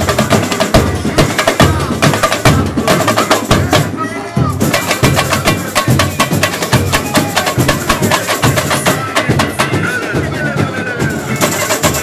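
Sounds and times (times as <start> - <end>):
samba drum section playing: 0.0 - 12.0.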